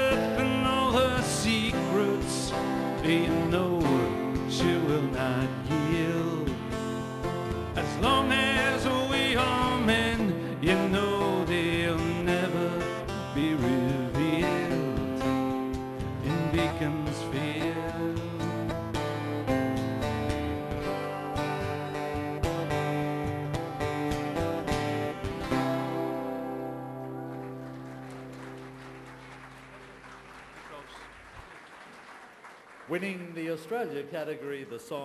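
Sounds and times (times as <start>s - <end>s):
person singing: 0.0s - 6.8s, 7.7s - 18.8s
strummed acoustic guitar: 0.0s - 28.6s.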